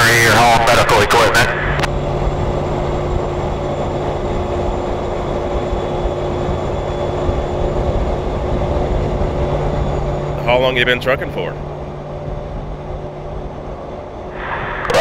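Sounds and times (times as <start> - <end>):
highway traffic drone: 0.0 - 15.0.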